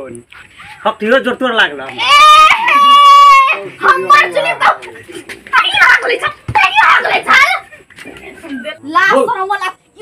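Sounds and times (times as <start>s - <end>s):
high-pitched drawn-out cry: 2.0s - 3.7s.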